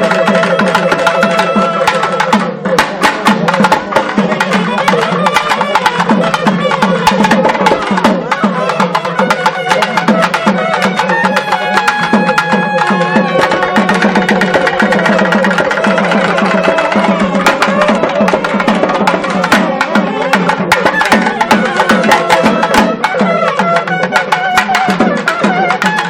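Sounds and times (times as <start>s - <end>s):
double-reed wind instruments melody: 0.0s - 2.6s, 4.3s - 26.0s
fast dense drumming: 0.0s - 25.9s.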